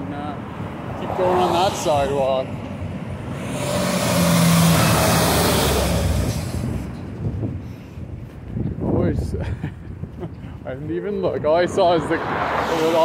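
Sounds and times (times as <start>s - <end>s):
vehicle passing by: 0.2s - 2.4s, 3.2s - 7.0s, 11.4s - 13.0s.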